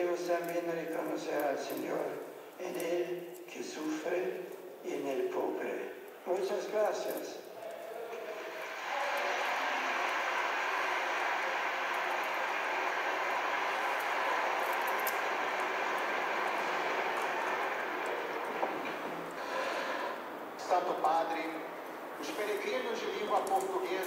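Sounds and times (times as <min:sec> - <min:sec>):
large audience applauding: 0:08.1 - 0:20.6.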